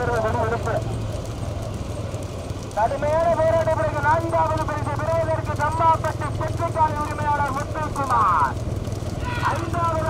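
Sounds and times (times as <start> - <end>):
motorcycle engines rumbling: 0.0 - 10.0
person talking fast: 2.8 - 8.6, 9.2 - 10.0.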